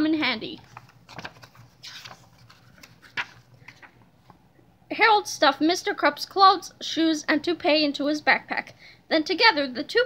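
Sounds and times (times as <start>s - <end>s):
book pages rustling: 0.5s - 4.4s.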